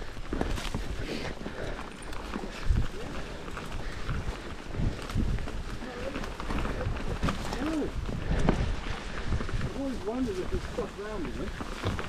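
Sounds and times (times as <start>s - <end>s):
bike clicks and rattles: 0.0s - 12.0s
rumble of bike tyres and wind: 0.0s - 12.0s.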